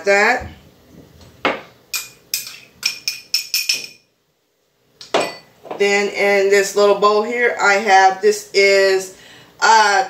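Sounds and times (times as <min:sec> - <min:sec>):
spoon clinking glass bowl: 0:01.9 - 0:04.1, 0:05.2 - 0:05.5.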